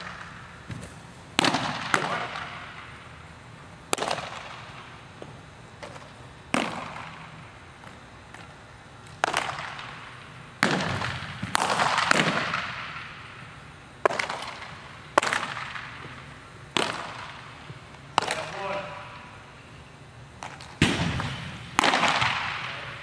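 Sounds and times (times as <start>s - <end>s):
baseballs smacking into mitts: 0.0s - 3.0s, 3.9s - 13.4s, 14.0s - 19.2s, 20.4s - 23.0s.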